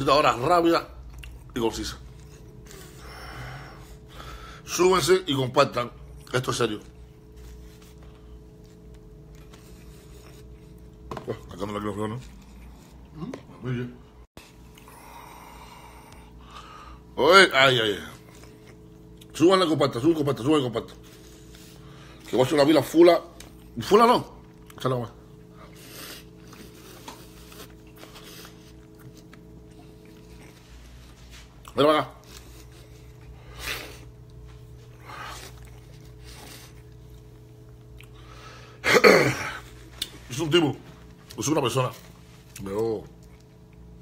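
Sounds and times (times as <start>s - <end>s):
low hum: 0.0s - 44.0s.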